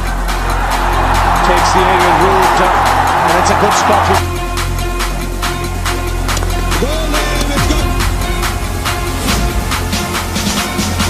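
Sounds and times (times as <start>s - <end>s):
electronic music with fast beat: 0.0s - 11.0s.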